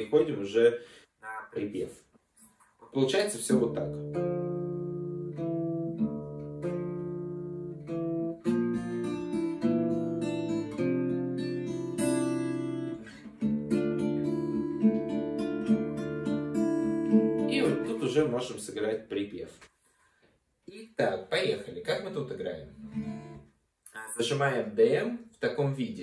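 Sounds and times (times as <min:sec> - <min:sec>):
fingerpicked acoustic guitar: 0:03.5 - 0:18.2, 0:22.7 - 0:24.1.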